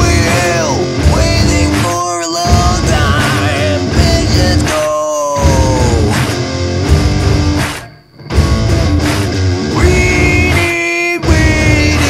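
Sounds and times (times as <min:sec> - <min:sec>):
instrumental hard rock: 0:00.0 - 0:12.0.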